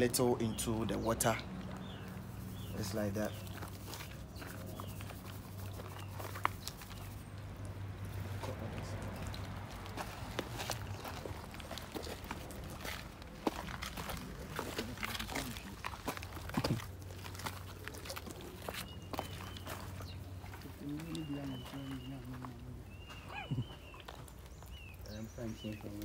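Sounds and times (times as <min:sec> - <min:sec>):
footsteps on gravelly dirt: 0:00.4 - 0:26.0.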